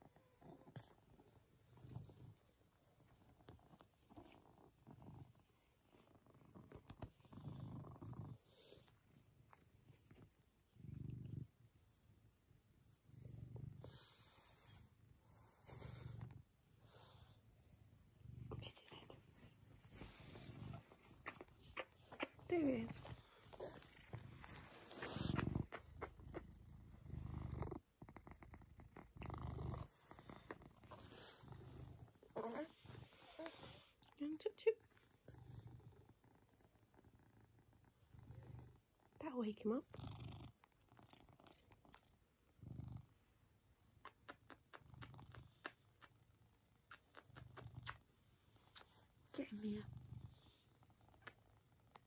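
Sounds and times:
cat purring: 0.0 - 52.0.

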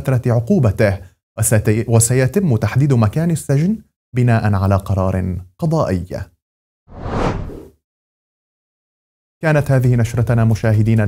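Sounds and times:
whoosh transition effect: 6.9 - 7.8.

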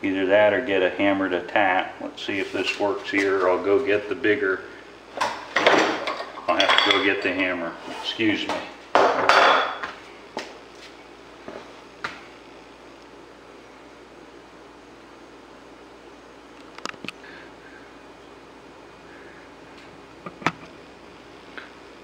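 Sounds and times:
low room hum: 0.0 - 22.0
metal tools clattering on workbench: 5.6 - 7.1.

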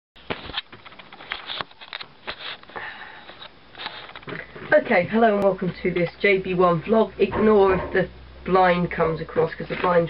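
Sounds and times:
breathy hiss near microphone: 1.2 - 5.4.

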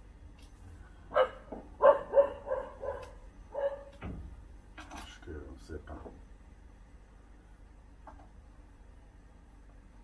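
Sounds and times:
dog barking: 1.1 - 4.0.

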